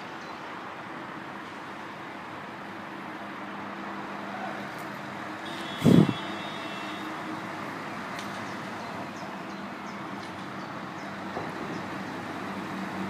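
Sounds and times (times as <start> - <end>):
diesel truck engines running: 0.7 - 13.0.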